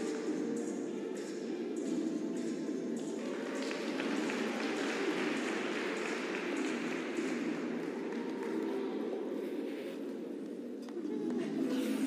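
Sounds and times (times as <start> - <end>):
audience applauding: 3.2 - 9.0.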